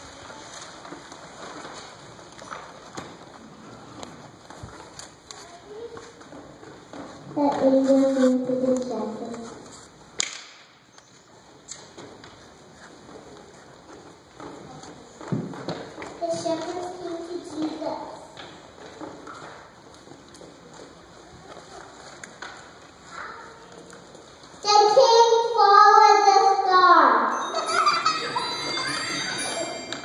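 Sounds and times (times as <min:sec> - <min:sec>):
child speaking into a microphone: 0:05.3 - 0:06.4, 0:07.2 - 0:09.6, 0:16.0 - 0:18.4, 0:23.0 - 0:23.9, 0:24.6 - 0:27.3.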